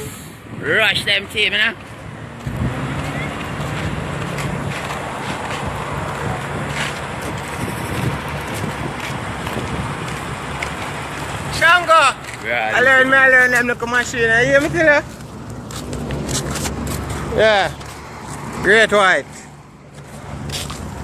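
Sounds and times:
wind buffeting microphone: 2.3s - 11.5s.

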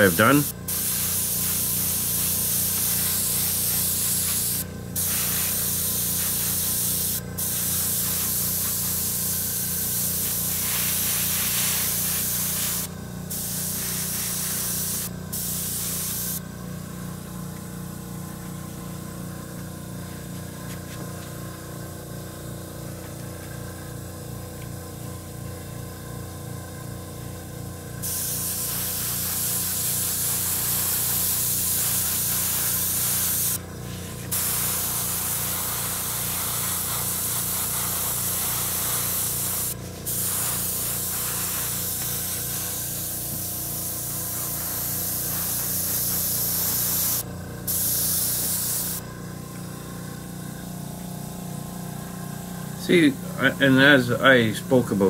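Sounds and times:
airbrush hissing: 0.0s - 16.4s, 28.0s - 49.1s.

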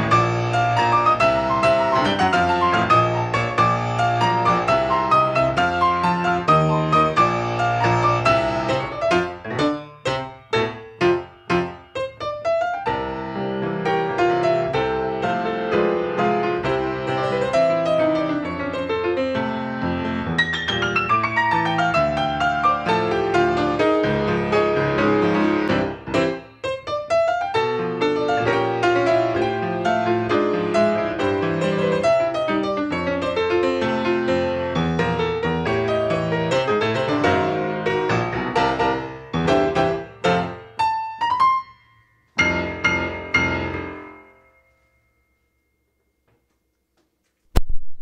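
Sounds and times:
solo grand piano piece: 0.0s - 46.5s.

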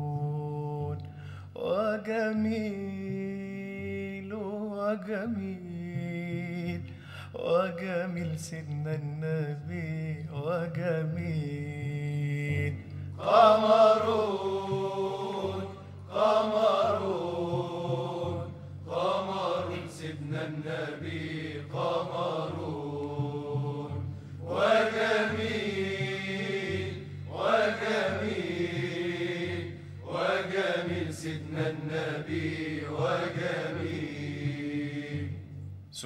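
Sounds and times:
devotional singing: 0.0s - 35.6s.

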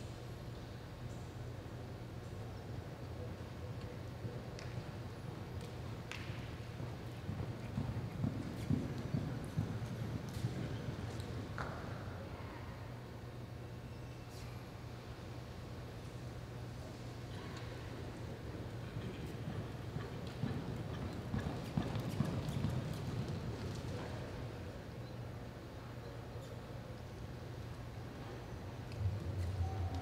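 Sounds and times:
horse galloping on dirt: 4.6s - 11.8s, 18.2s - 24.6s.

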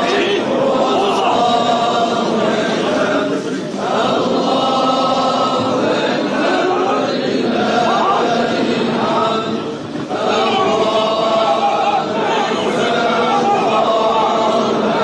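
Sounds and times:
men chanting in unison: 0.0s - 15.0s.

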